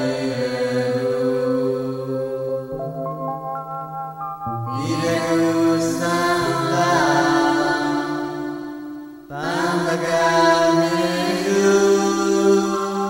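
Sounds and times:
person chanting: 0:00.0 - 0:03.2, 0:04.5 - 0:13.0
music: 0:00.0 - 0:13.0.

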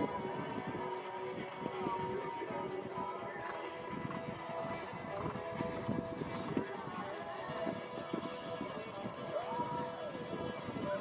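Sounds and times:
background music: 0:00.0 - 0:11.0
horse hoofbeats on sand: 0:03.4 - 0:07.8.

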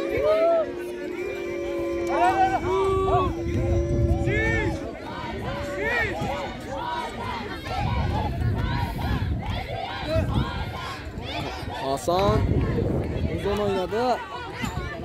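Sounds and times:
crowd shouting: 0:00.0 - 0:15.0.

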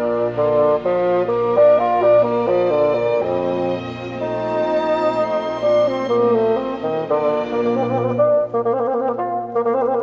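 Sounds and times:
bassoon melody: 0:00.0 - 0:10.0
string and wind accompaniment: 0:00.0 - 0:10.0.

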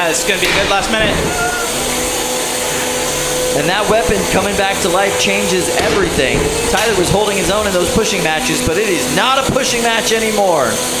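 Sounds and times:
arena clatter: 0:00.3 - 0:09.9.

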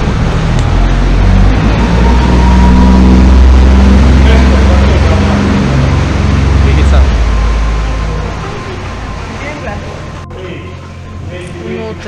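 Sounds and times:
boat motor droning: 0:00.0 - 0:12.0
voices: 0:01.5 - 0:12.0.

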